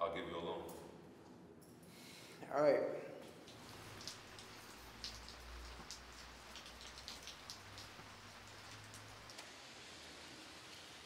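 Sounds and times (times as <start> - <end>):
light rain hiss: 0.2 - 11.0
raindrops ticking: 3.2 - 11.0.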